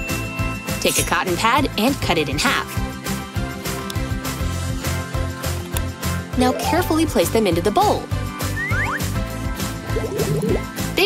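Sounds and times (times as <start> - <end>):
background music with beat: 8.1 - 11.0.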